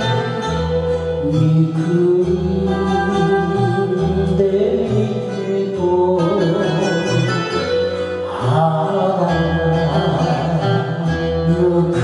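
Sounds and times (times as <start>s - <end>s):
karaoke backing track: 0.0s - 12.0s
person singing ballad: 0.0s - 12.0s.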